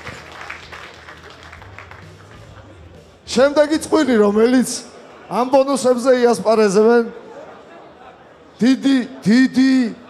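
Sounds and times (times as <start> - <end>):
scattered applause: 0.0 - 3.0.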